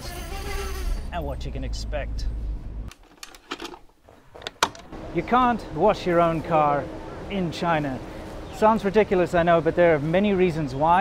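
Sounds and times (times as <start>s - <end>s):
tape loading clunk: 2.9s - 4.9s.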